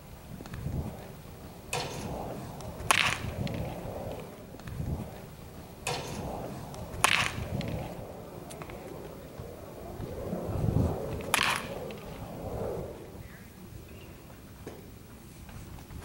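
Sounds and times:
wind rumble on microphone: 0.0s - 16.0s
baseball bat cracking ball: 1.7s - 4.3s, 5.8s - 8.9s, 11.1s - 12.2s.

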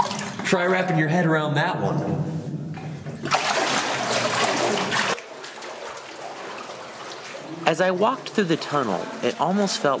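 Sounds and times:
person wading through water: 3.2s - 9.6s.

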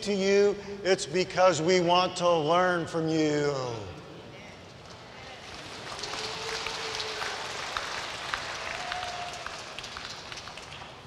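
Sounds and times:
crowd applauding: 5.4s - 11.0s.

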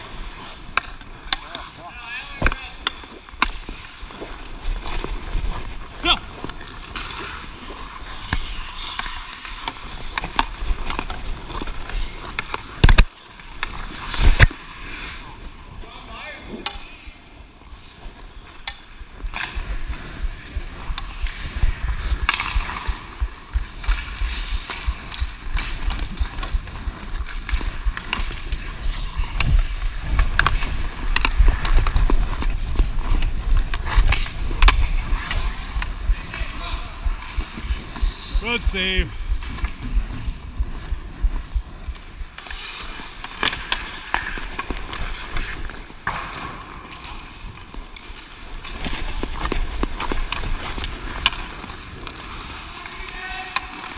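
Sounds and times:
skate blades scraping on ice: 0.0s - 53.9s
hockey stick clicks: 6.4s - 14.6s, 18.5s - 19.8s, 20.9s - 36.5s, 41.8s - 53.9s.

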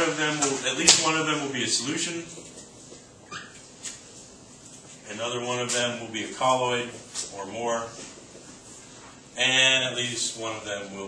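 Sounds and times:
marker squeaking on whiteboard: 2.0s - 4.9s.

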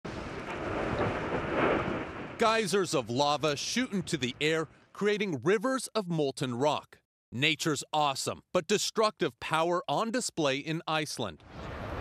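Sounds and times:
lava fountain rushing: 0.1s - 5.0s, 11.4s - 12.0s.

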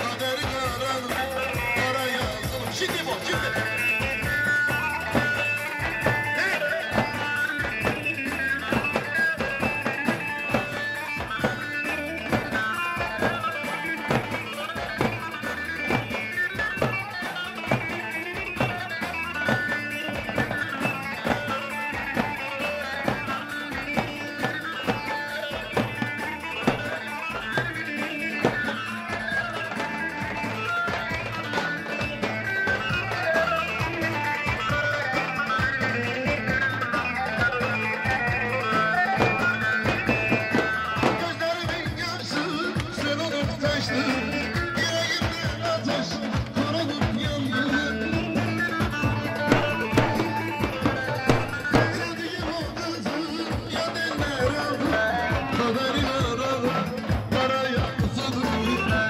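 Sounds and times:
lead melody line: 0.0s - 59.0s
bass drums beating: 44.5s - 59.0s.

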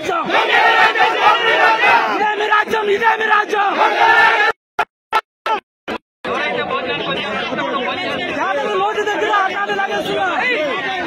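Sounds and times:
crowd of men talking: 0.0s - 4.6s, 5.5s - 11.0s.

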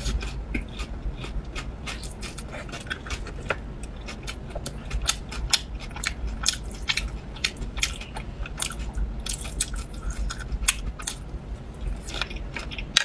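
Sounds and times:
chewing and biting sausage: 0.0s - 13.0s.

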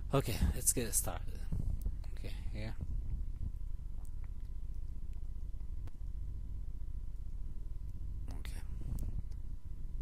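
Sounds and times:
low electrical hum: 0.0s - 10.0s
whisper: 8.3s - 9.3s.

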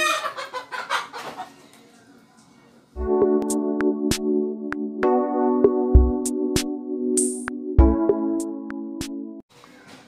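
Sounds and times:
hen clucking: 0.0s - 1.6s.

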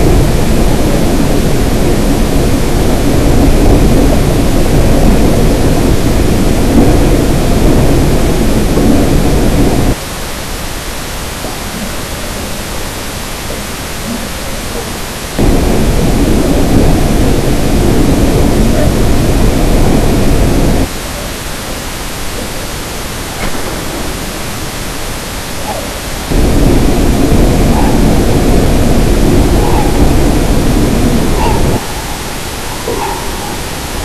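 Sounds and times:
dense noise music: 0.0s - 34.0s
thin hiss: 0.0s - 34.0s.

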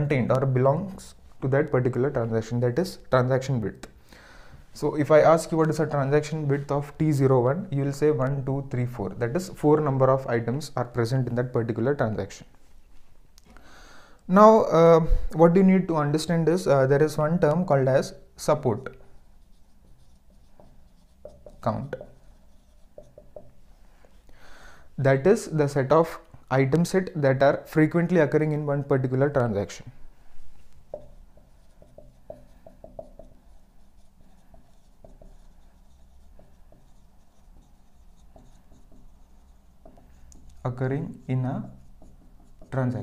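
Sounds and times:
marker writing on whiteboard: 4.8s - 11.8s, 16.3s - 24.2s, 30.6s - 43.0s.

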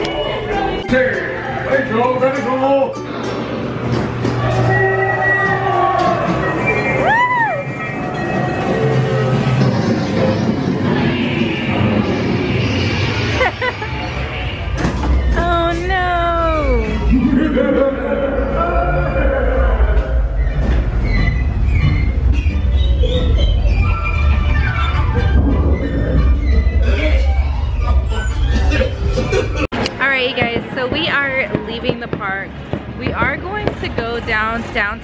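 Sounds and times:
low train rumble: 7.1s - 35.0s.

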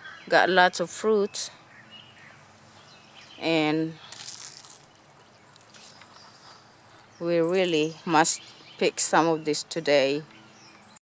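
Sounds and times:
leaves rustling and crackling: 2.3s - 7.3s.

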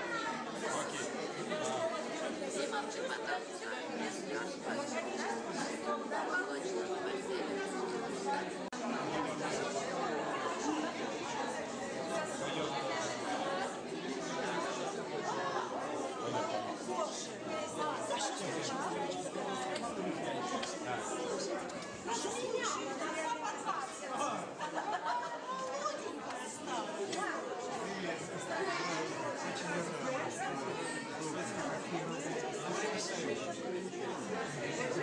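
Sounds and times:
crowd hubbub of conversations: 0.0s - 35.0s.

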